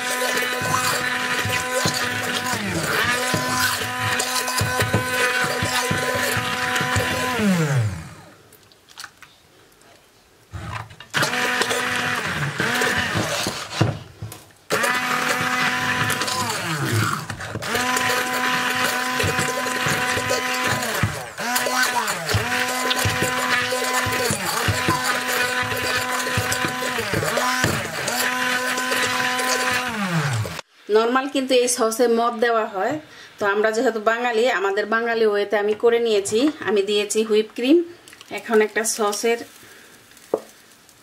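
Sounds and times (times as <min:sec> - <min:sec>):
immersion blender whirring: 0:00.0 - 0:08.3, 0:10.6 - 0:30.6.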